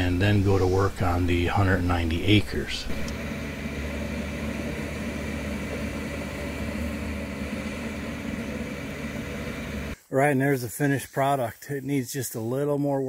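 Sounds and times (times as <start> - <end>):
excavator diesel engine humming: 3.0 - 10.0.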